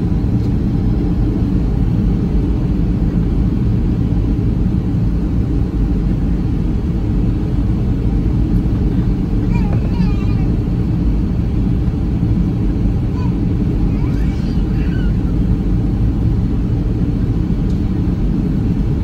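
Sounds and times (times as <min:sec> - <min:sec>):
airliner cabin engine rumble: 0:00.0 - 0:19.0.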